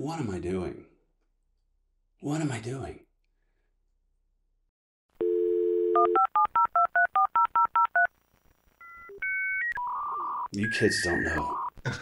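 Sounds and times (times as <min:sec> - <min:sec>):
dial tone: 0:05.2 - 0:08.1
touch-tone dialing beeps: 0:05.2 - 0:08.1, 0:08.8 - 0:11.7.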